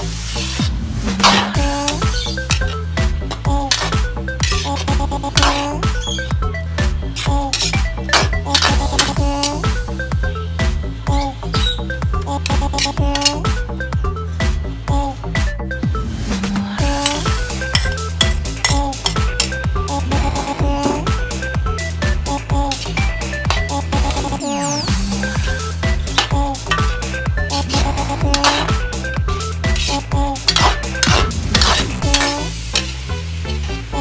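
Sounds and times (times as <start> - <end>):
food sizzling: 0.0 - 10.2, 16.8 - 34.0
music with steady beat: 0.0 - 34.0
spoon scraping a wok: 1.2 - 6.3, 7.1 - 9.7, 12.4 - 13.5, 16.9 - 19.6, 22.7 - 33.7
meat sizzling: 22.0 - 34.0.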